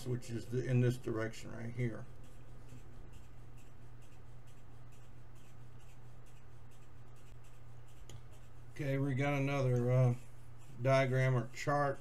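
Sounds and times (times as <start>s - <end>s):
low background hum: 0.0s - 12.0s
scratchy rustling: 0.3s - 12.0s.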